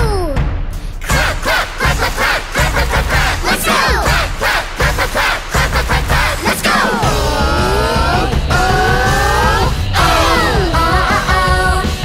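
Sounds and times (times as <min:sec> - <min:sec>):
children's song with beat: 0:00.0 - 0:12.0
crowd cheering and shouting: 0:01.0 - 0:12.0.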